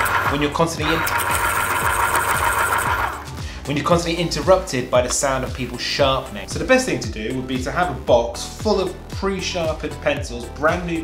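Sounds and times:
pencil sharpener grinding: 0:00.0 - 0:03.4.

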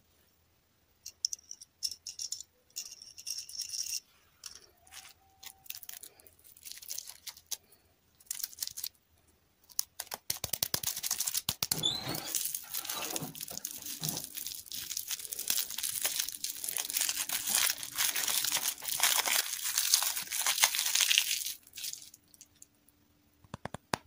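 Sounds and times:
plastic wrapper crinkling: 0:04.8 - 0:09.0, 0:09.6 - 0:22.7.

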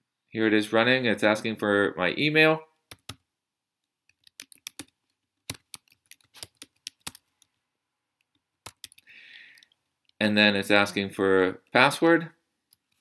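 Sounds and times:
typing on computer keyboard: 0:02.9 - 0:03.2, 0:04.1 - 0:07.5, 0:08.6 - 0:09.8.

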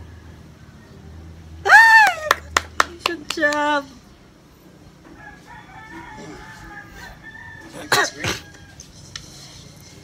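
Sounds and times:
rooster crowing: 0:05.1 - 0:08.9.

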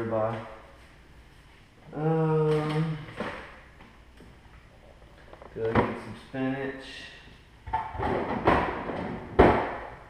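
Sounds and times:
rustling and clattering of items: 0:07.7 - 0:09.9.

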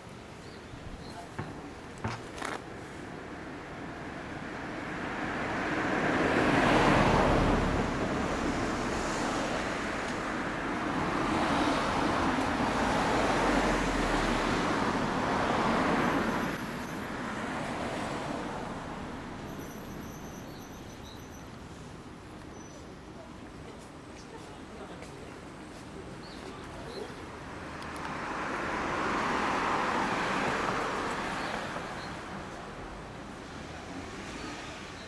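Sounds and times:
road traffic passing: 0:00.0 - 0:35.0.

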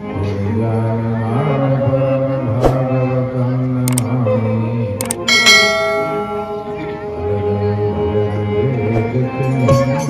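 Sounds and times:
devotional music: 0:00.0 - 0:10.0
bell chime ringing: 0:05.0 - 0:07.0.

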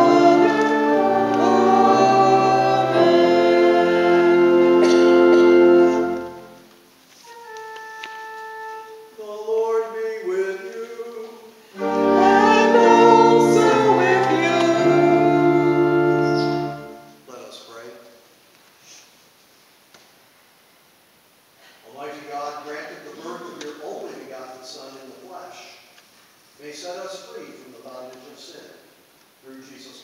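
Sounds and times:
church organ chords: 0:00.0 - 0:09.2, 0:11.7 - 0:17.3
congregation singing: 0:00.0 - 0:17.2.

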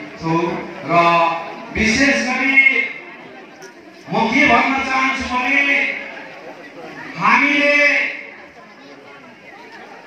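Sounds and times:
man's loud amplified voice: 0:00.0 - 0:03.0, 0:04.1 - 0:06.1, 0:07.1 - 0:08.4
crowd chatter: 0:00.0 - 0:10.0.

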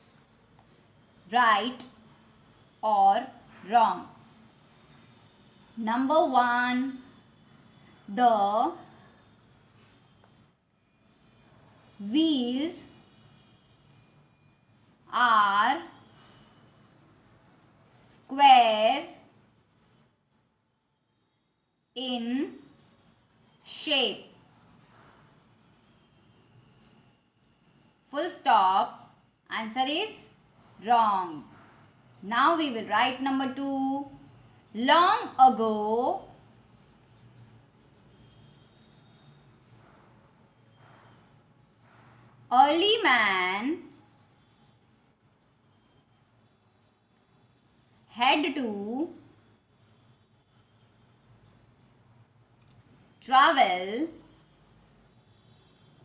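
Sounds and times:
pen scratching on paper: 0:00.0 - 0:04.2, 0:08.5 - 0:10.5, 0:11.6 - 0:20.2, 0:22.3 - 0:27.0, 0:28.8 - 0:29.2, 0:34.6 - 0:40.0, 0:43.0 - 0:47.1, 0:48.4 - 0:51.7, 0:54.0 - 0:56.0.

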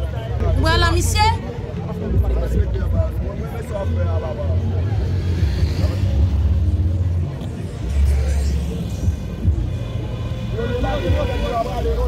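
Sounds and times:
people talking in the street: 0:00.0 - 0:12.0.

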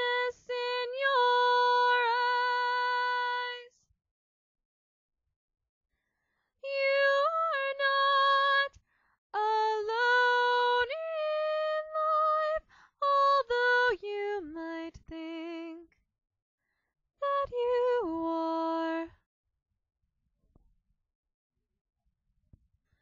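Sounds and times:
woman singing unaccompanied: 0:00.0 - 0:03.9, 0:06.6 - 0:15.9, 0:17.2 - 0:19.2.

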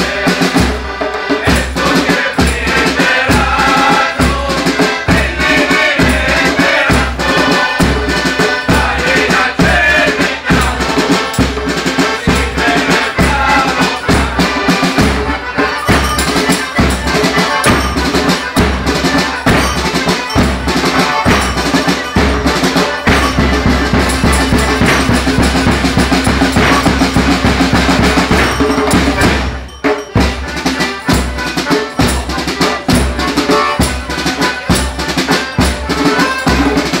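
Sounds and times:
live folk band music: 0:00.0 - 0:37.0
loud drumming: 0:00.0 - 0:37.0.

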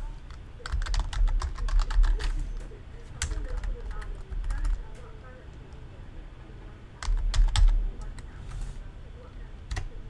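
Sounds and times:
steady low hum: 0:00.0 - 0:10.0
computer keyboard keys clicking: 0:00.3 - 0:02.4, 0:03.2 - 0:05.0, 0:07.0 - 0:08.2, 0:09.7 - 0:09.9.

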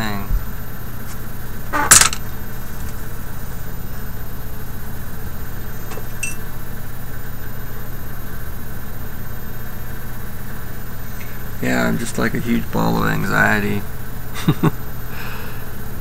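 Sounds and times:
machine hum: 0:00.0 - 0:16.0.

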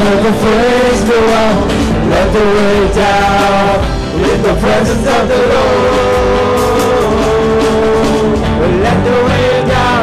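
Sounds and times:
electric and acoustic guitars: 0:00.0 - 0:10.0
worship band music: 0:00.0 - 0:10.0.

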